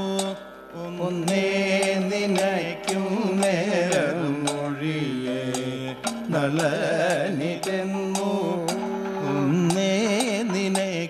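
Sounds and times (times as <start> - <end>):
sharp metallic strikes: 0.0 - 11.0.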